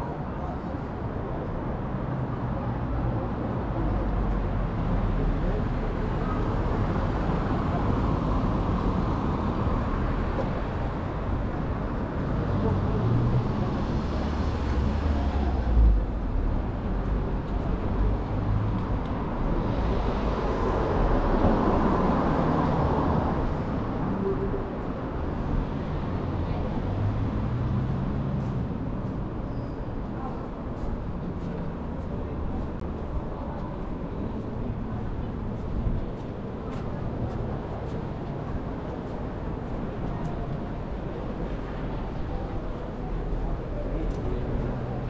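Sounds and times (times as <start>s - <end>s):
road traffic: 0.0s - 45.0s
vehicles passing: 0.0s - 45.0s.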